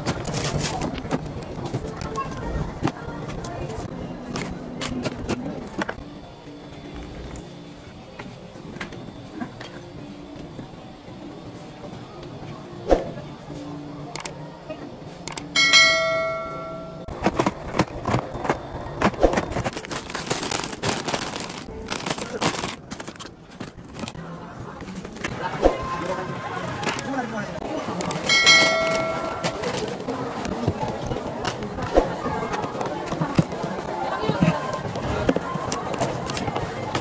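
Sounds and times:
store background noise: 0.0 - 37.0
bell ding: 15.6 - 17.1, 28.3 - 29.8
packaging rustling: 17.1 - 24.2.

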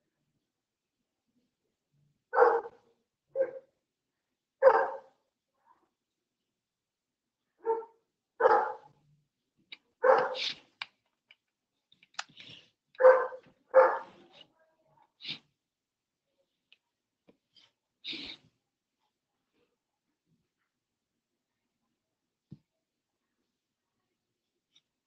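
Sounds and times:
dog barking: 2.3 - 2.8, 3.4 - 3.7, 4.6 - 5.2, 7.6 - 8.9, 10.0 - 10.5, 13.0 - 14.2.

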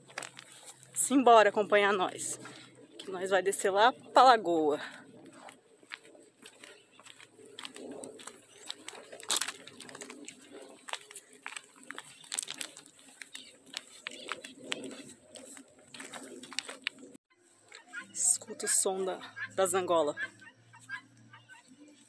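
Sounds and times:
footsteps on gravel: 0.0 - 18.0
doves cooing: 0.0 - 22.0.

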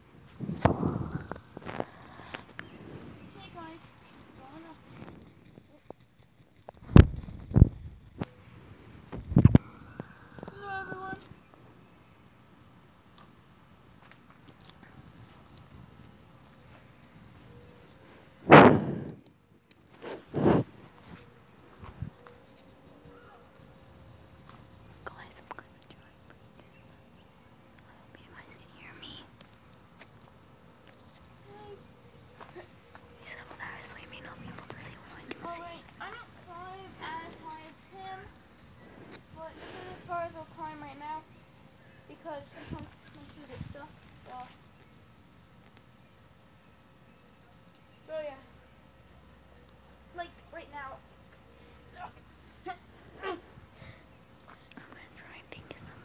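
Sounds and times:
faint whispering voices: 0.2 - 6.8, 8.2 - 12.0, 19.9 - 29.8, 30.8 - 44.6, 47.3 - 56.0.

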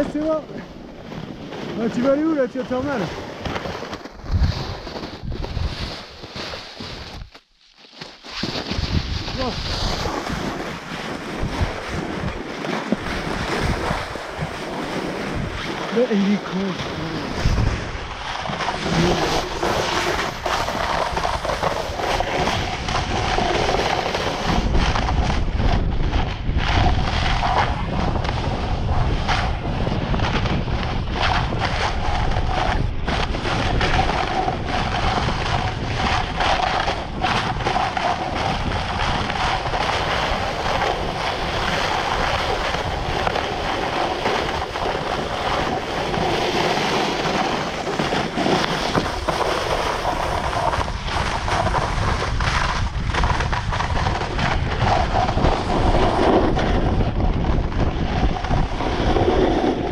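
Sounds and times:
wind rushing over microphone: 0.0 - 7.4, 8.3 - 59.9
skis hissing over snow: 0.0 - 12.2, 12.8 - 25.3, 30.6 - 57.0, 58.4 - 59.9
ski edges scraping: 0.0 - 59.9.

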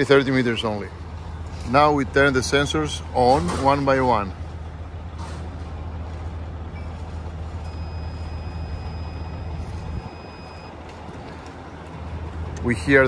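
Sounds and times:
vehicle engine idling: 0.0 - 13.0
high-pitched sensor beep: 7.6 - 10.8.

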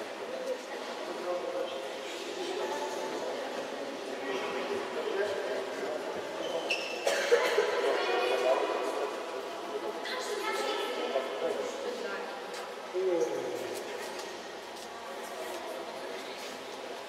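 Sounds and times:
chatter of many voices: 0.0 - 17.0.

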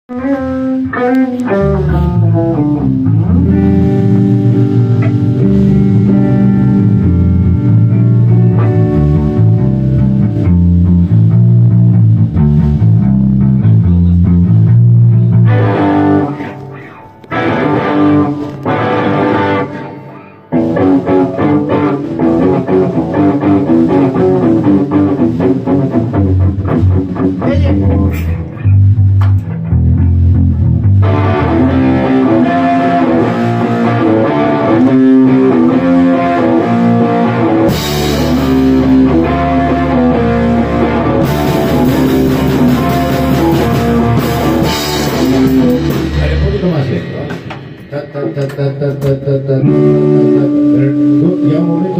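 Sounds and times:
bass guitar riffs: 0.1 - 51.9
electric guitar riffs: 0.1 - 51.9
drums and cymbals: 37.7 - 39.2, 41.2 - 48.4.

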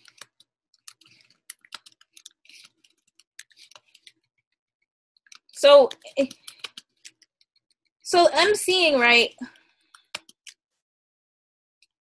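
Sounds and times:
computer keyboard typing: 0.0 - 4.3, 5.3 - 7.8, 9.5 - 10.6.

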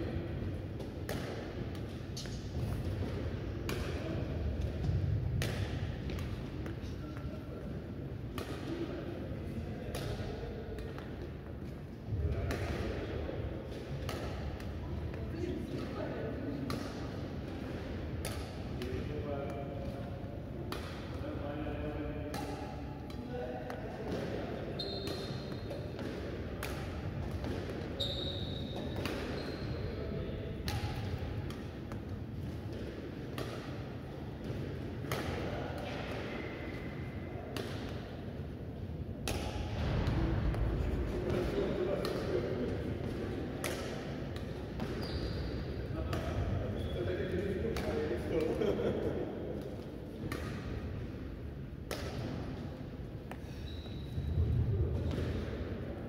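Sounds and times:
badminton racket hitting shuttlecock: 0.8 - 4.0, 13.8 - 14.8, 16.7 - 20.0, 20.6 - 21.2, 22.3 - 24.4, 25.0 - 28.0, 28.8 - 29.4, 30.6 - 36.3, 39.2 - 39.8, 43.0 - 45.0
shoes squeaking on court: 24.7 - 25.9, 28.0 - 30.0, 44.8 - 45.7, 53.4 - 54.4.

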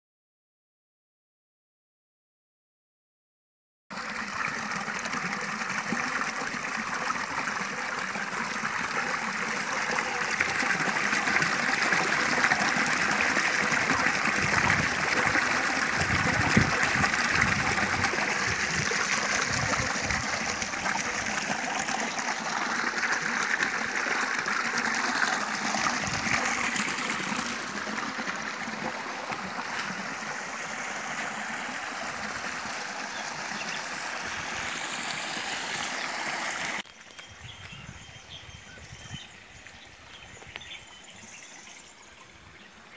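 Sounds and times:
fountain water splashing into basin: 3.9 - 37.1.

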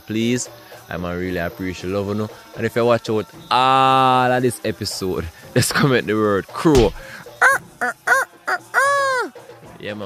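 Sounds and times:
rooster crowing: 7.4 - 9.3.

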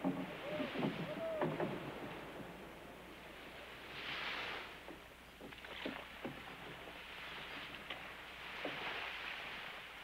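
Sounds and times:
water at sea: 0.0 - 10.0
wind: 0.0 - 10.0.

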